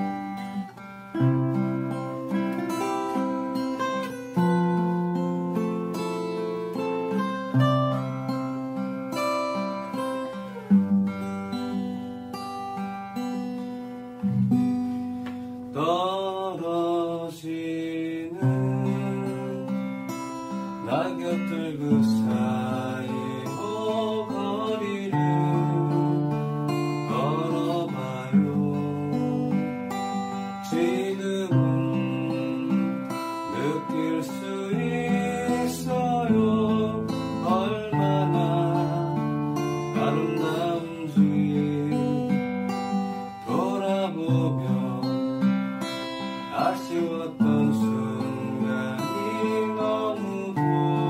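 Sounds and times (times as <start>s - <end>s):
acoustic guitar plucked: 0.0s - 51.0s
person singing: 15.7s - 51.0s.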